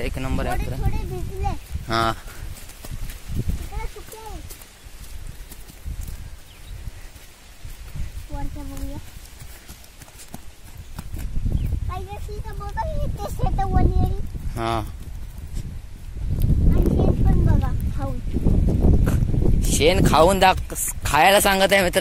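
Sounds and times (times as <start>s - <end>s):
footsteps on straw and soil: 0.4s - 13.1s, 13.8s - 17.3s.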